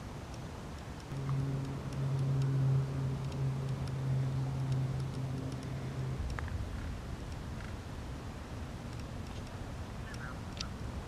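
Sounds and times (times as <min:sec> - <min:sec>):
low steady hum: 0:00.0 - 0:11.0
faint high ticks: 0:00.3 - 0:07.8, 0:08.8 - 0:10.8.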